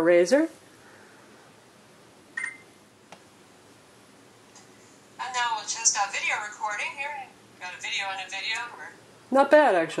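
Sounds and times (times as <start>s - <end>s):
faint room hiss: 0.0s - 10.0s
short electronic beep: 2.4s - 2.7s.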